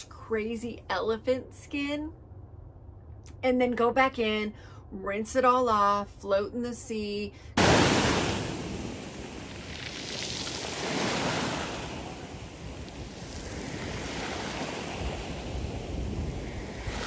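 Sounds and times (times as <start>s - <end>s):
small waves breaking on shore: 7.6s - 17.0s
wind on microphone: 7.9s - 17.0s.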